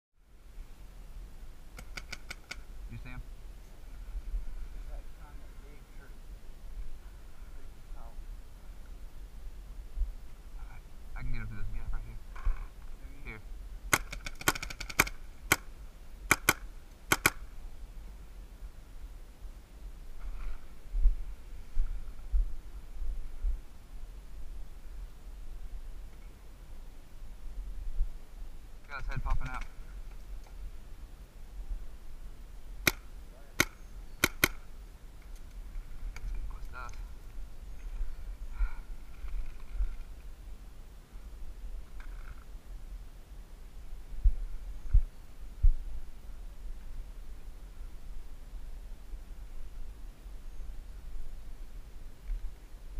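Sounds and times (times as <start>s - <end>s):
paintball markers firing: 1.8s - 2.6s, 13.9s - 15.7s, 16.3s - 17.5s, 32.8s - 34.7s.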